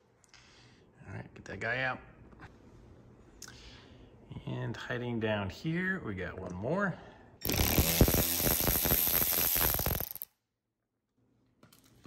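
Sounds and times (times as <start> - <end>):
ratchet clicking rapidly: 7.4 - 10.3.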